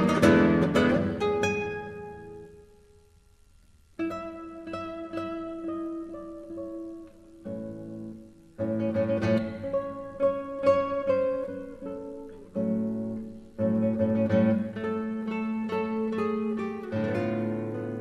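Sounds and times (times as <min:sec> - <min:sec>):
classical guitar chords: 0:00.0 - 0:18.0.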